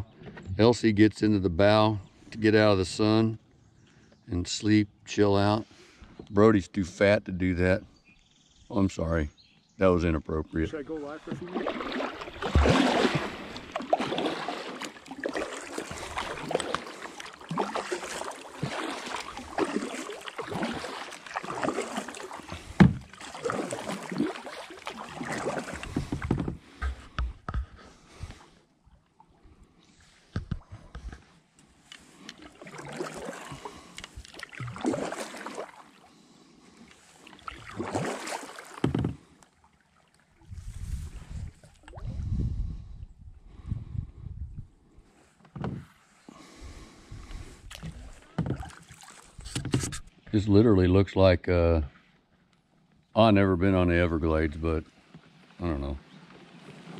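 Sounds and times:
paddle strokes splashing: 10.7s - 28.6s, 29.9s - 42.1s, 47.5s - 50.2s, 54.9s - 56.9s.

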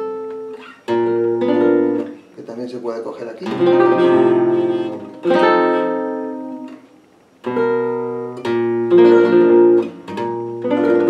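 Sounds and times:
flamenco guitar chords: 0.0s - 11.0s.

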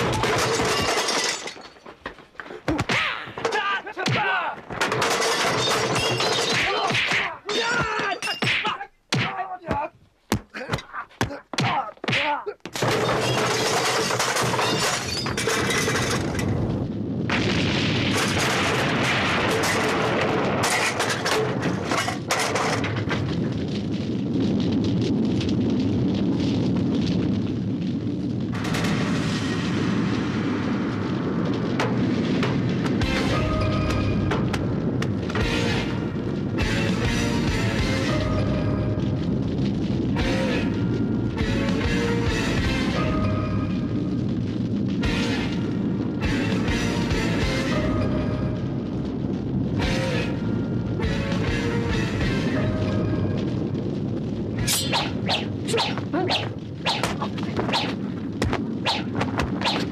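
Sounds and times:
booming explosions: 0.0s - 1.6s, 12.7s - 59.9s
fire crackling: 0.0s - 59.9s
dramatic film score: 32.9s - 44.2s, 44.9s - 53.6s.

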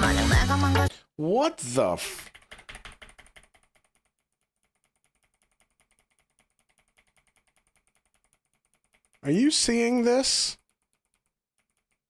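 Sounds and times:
music: 0.0s - 1.0s
computer keyboard tapping: 2.3s - 9.8s, 10.6s - 12.0s.

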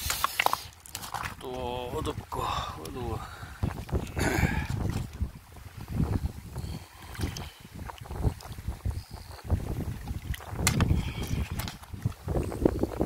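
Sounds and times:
river stones knocking together: 0.0s - 2.1s, 10.4s - 12.0s
wind buffeting microphone: 1.1s - 13.0s.

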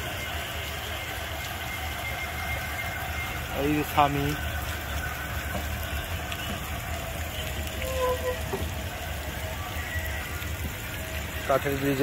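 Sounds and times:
faint music: 0.0s - 12.0s
fountain splashing into pond: 0.0s - 12.0s.

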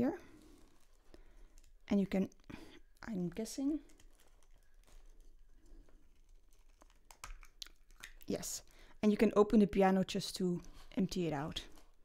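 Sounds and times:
faint handling noise: 0.3s - 8.0s.

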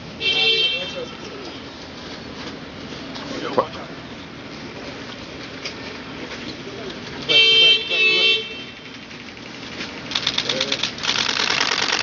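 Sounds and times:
car horn honking: 0.2s - 1.4s, 7.3s - 8.9s
camera shutter clicks: 10.1s - 12.0s.

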